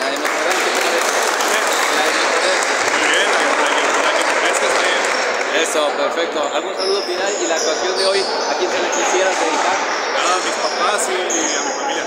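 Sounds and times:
spectators applauding: 0.0s - 5.9s
crowd voices: 0.0s - 12.0s.

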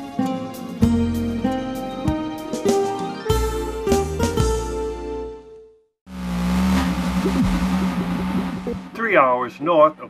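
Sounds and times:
low engine hum: 6.1s - 9.0s.

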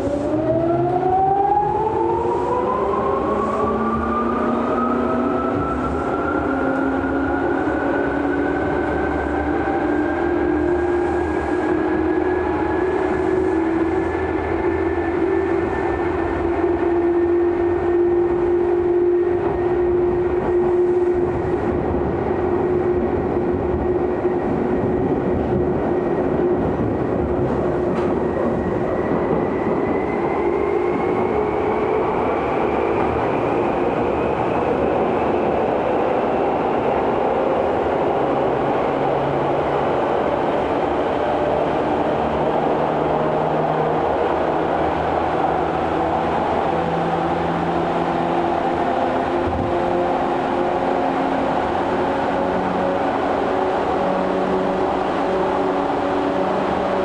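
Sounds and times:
wheels rumbling on rail: 0.0s - 57.0s.

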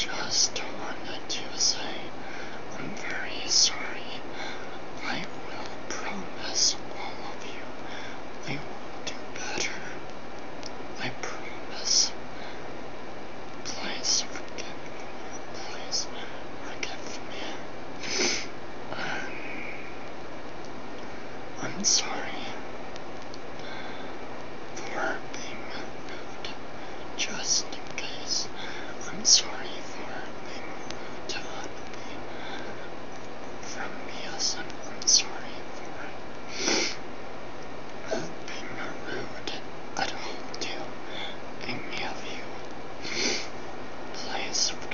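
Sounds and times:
man whispering: 0.0s - 10.1s, 11.0s - 12.6s, 13.6s - 20.0s, 21.6s - 22.7s, 24.8s - 32.9s, 33.6s - 37.0s, 38.0s - 43.5s, 44.1s - 44.9s
steady hiss: 0.0s - 44.9s.

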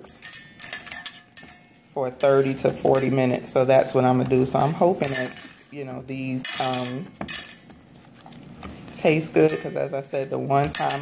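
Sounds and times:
sprouts rattling in a metal bowl: 0.0s - 11.0s.

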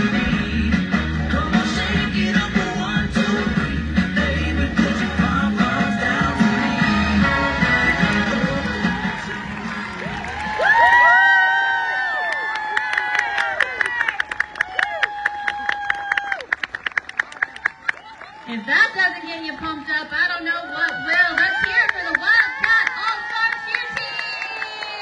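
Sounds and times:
cheerleading music over loudspeakers: 0.0s - 14.1s, 18.3s - 25.0s
high-pitched whoops and cheering: 5.9s - 16.5s, 17.4s - 25.0s.

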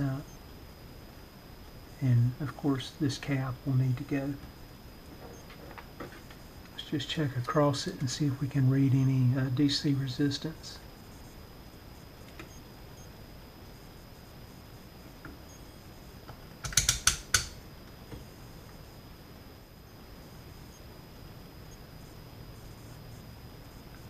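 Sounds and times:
faint room hiss: 0.0s - 24.0s
thin high whine: 0.0s - 24.0s
test probes clicking and tapping: 12.2s - 12.6s, 16.2s - 18.3s.

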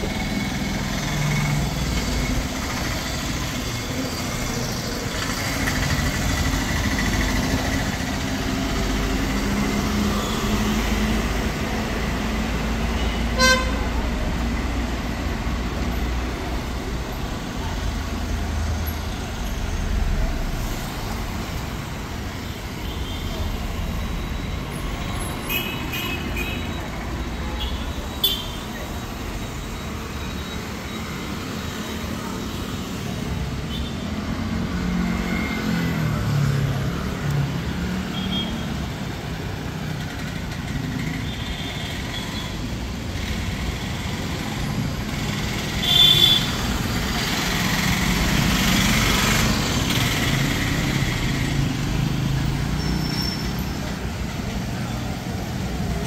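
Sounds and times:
traffic engine and tyre rumble: 0.0s - 56.0s
vehicle horn beeps: 13.0s - 14.0s, 27.6s - 28.7s, 38.1s - 38.7s, 45.8s - 46.6s.

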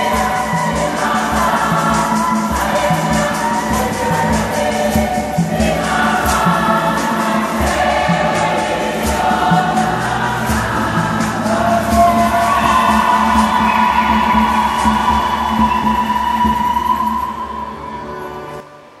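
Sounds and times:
shaken rattles: 0.0s - 17.2s
steady low beat: 0.0s - 17.5s
women's choir singing a hymn: 0.0s - 17.7s
keyboard accompaniment: 0.0s - 19.0s.

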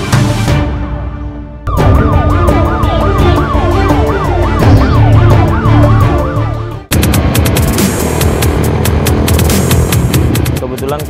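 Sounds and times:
theme music with heavy bass: 0.0s - 11.0s
siren yelping: 1.7s - 6.9s.

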